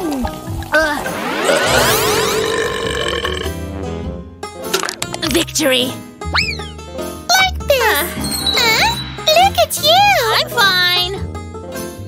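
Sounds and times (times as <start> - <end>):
background music: 0.0 - 12.0
long cartoon burp: 1.4 - 3.6.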